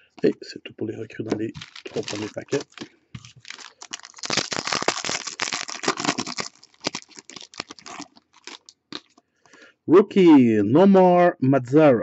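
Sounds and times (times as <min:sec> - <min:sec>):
cards rustling and clicking: 0:01.3 - 0:09.2
foil wrapper tearing and crinkling: 0:01.4 - 0:09.2.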